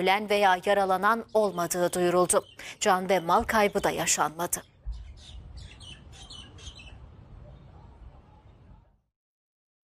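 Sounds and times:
small bird chirping: 1.2 - 8.7.

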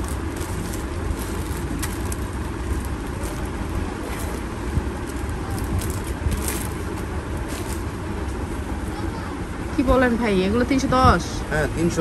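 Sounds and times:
crowded market background noise: 0.0 - 12.0.

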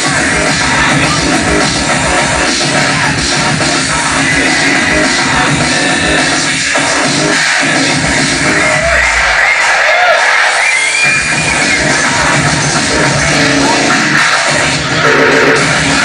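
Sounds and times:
loud distorted hardcore electronic music: 0.0 - 16.0.

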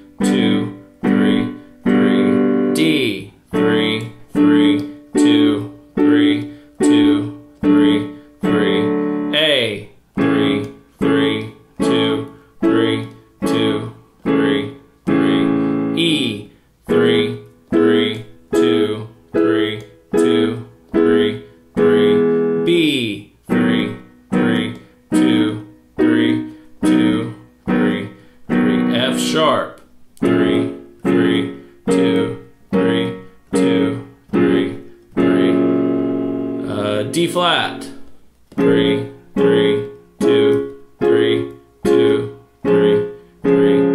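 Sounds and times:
digital piano chords: 0.0 - 43.9
person counting: 0.0 - 43.9.

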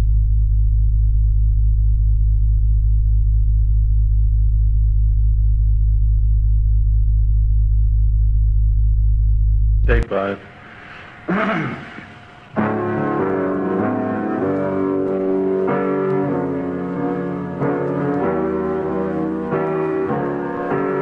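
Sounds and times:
deep drone: 0.0 - 21.0.

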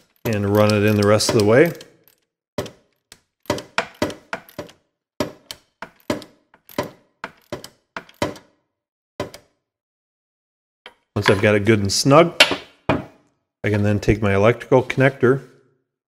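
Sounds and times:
ratchet clicking: 0.0 - 2.3.

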